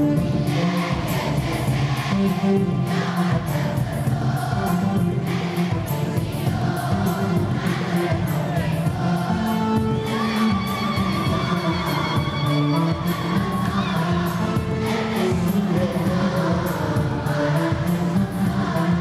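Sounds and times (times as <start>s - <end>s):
children's choir singing with music: 0.0s - 19.0s.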